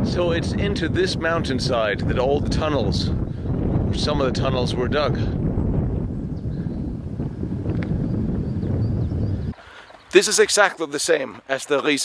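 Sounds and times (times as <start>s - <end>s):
wind buffeting microphone: 0.0s - 10.4s.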